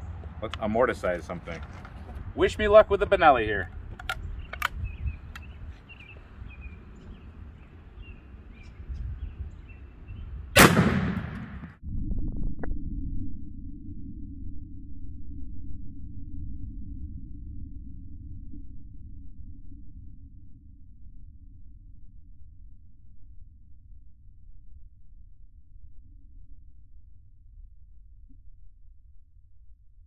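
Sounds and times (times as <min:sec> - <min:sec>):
steady low rumble: 0:00.0 - 0:30.0
gun handling clicks: 0:03.6 - 0:05.5
shotgun shot with echo: 0:10.6 - 0:11.8.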